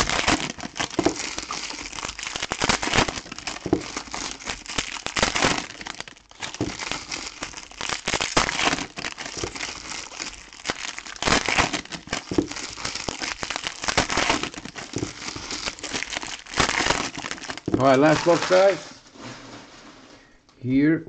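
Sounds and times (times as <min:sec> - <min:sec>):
foil wrappers crinkling: 0:00.0 - 0:20.0.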